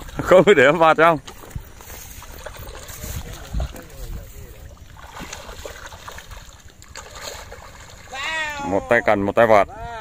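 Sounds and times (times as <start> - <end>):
fish splashing in water: 0.0 - 8.7
wind rumble on microphone: 0.0 - 10.0.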